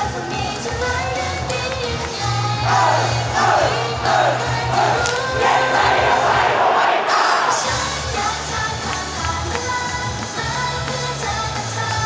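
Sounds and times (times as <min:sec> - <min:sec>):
upbeat pop song with singer: 0:00.0 - 0:06.3, 0:07.1 - 0:12.0
audience shouting fan chants: 0:02.5 - 0:07.9.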